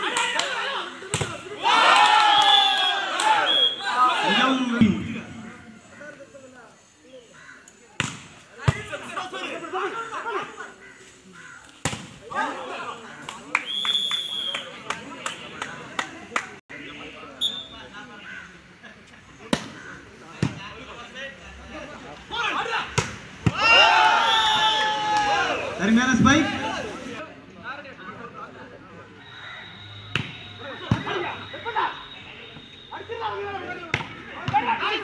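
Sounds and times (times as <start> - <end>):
people shouting: 0.0 - 4.8, 23.5 - 25.8.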